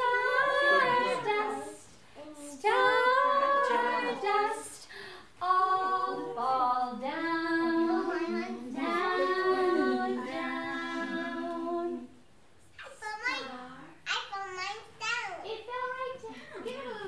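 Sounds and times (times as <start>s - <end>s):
adults and children singing: 0.0s - 12.3s, 15.5s - 17.0s.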